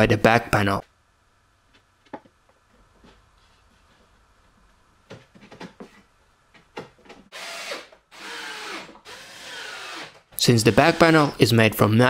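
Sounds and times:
cordless drill drilling: 7.3s - 11.4s.

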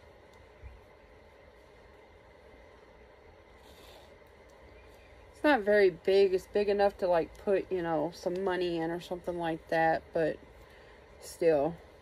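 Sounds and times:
faint rustle: 0.1s - 5.4s.

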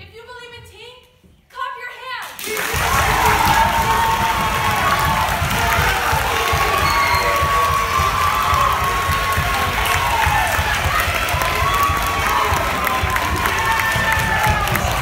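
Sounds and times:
audience clapping: 2.3s - 15.0s
whoops and shouts: 2.6s - 15.0s.

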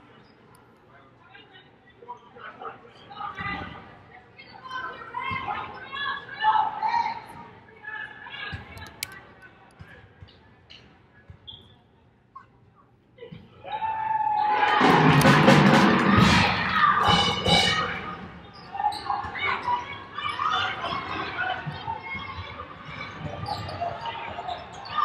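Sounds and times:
arena crowd cheering: 13.6s - 25.0s.

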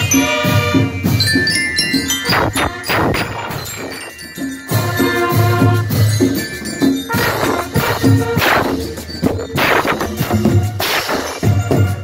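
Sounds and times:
bugles and trumpets: 0.0s - 1.2s, 2.2s - 3.9s, 4.6s - 12.0s
drum beats: 0.0s - 12.0s.

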